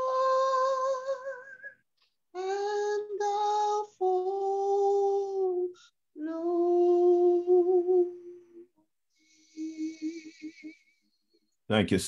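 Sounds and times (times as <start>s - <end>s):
woman singing unaccompanied: 0.0s - 1.7s, 2.3s - 8.7s, 9.4s - 10.9s.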